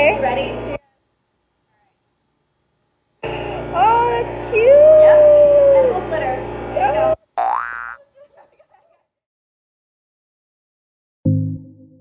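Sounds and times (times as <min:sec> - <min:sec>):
rising whoop: 0:04.6 - 0:06.0.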